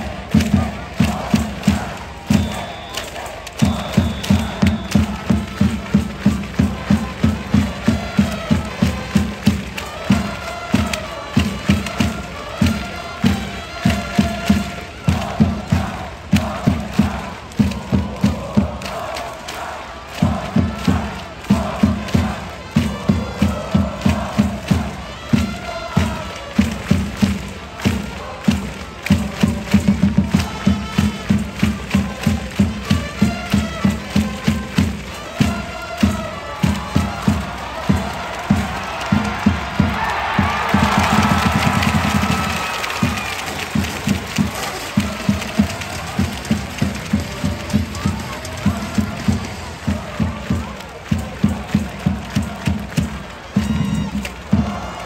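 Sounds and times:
crowd chanting in unison: 0.0 - 55.0
drums beating: 0.0 - 55.0.

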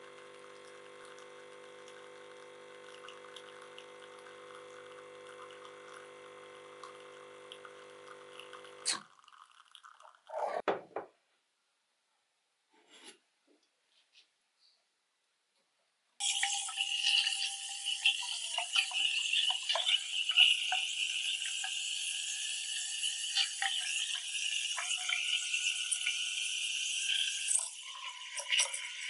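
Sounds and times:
milk crackling: 0.6 - 6.1, 6.8 - 10.5.

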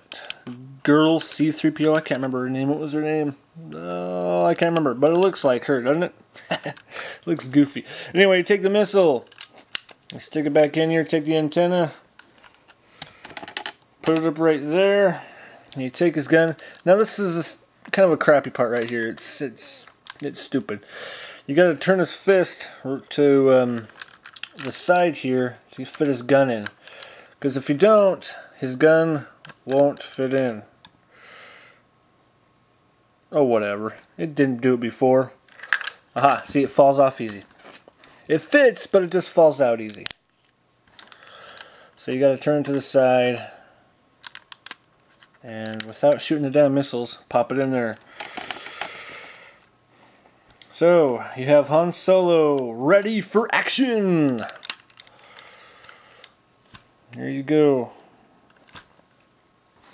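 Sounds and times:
plastic toy parts clicking: 9.2 - 10.0, 18.5 - 19.3, 23.8 - 25.0, 39.8 - 40.2, 44.2 - 46.2, 54.3 - 56.8.

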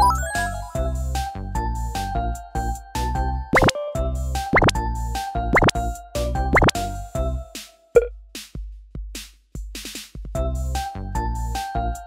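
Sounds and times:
bouncy children's music: 0.0 - 7.9.

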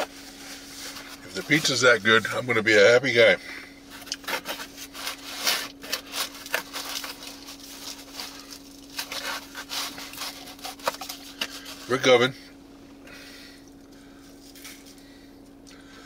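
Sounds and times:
faint steady hum: 0.0 - 16.0
crackly rustles: 3.9 - 12.2.

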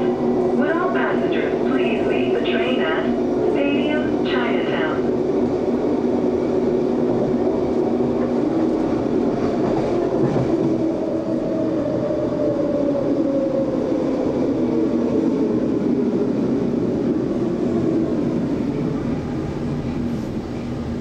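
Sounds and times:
person speaking: 0.0 - 5.1
train car rumble: 0.0 - 21.0.

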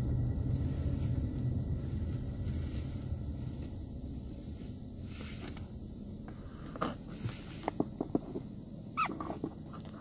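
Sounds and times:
low engine hum: 0.0 - 10.0
short falling squeak: 9.0 - 9.4.

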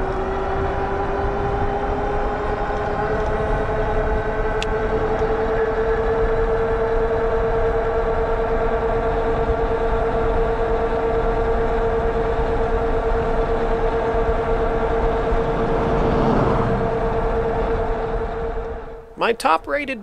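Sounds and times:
wind on microphone: 0.0 - 6.6, 12.1 - 19.0
tire road rumble: 0.0 - 19.5
electric bike drive whine: 0.0 - 19.8.

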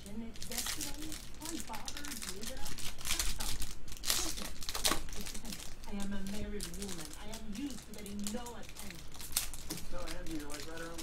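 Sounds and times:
foil wrapper crinkling and tearing: 0.3 - 11.0.

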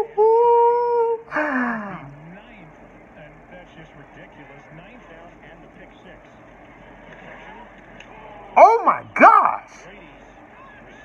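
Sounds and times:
commentator talking: 8.6 - 9.8
man exclaiming loudly: 8.6 - 9.8.

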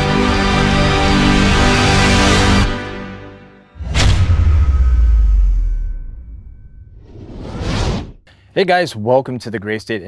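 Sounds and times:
rising whoosh effect: 3.8 - 8.2.

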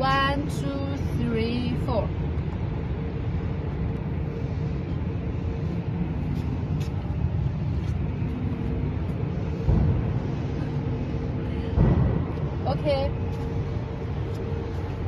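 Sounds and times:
constant hum: 0.0 - 15.0
engine running low rumble: 0.0 - 15.0
thump: 11.8 - 12.3.

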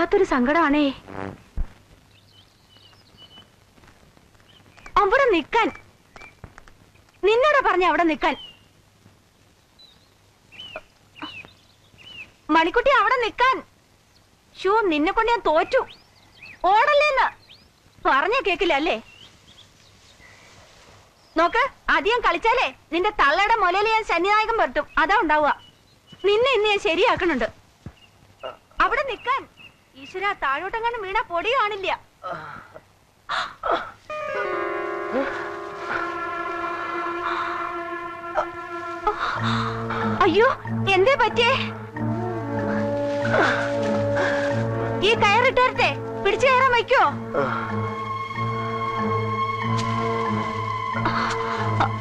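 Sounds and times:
bird chirping: 2.0 - 3.6, 4.4 - 7.2, 8.0 - 8.8, 9.5 - 12.5, 15.1 - 20.5, 24.4 - 26.8, 27.9 - 30.9
sustained music chord: 34.1 - 52.0.

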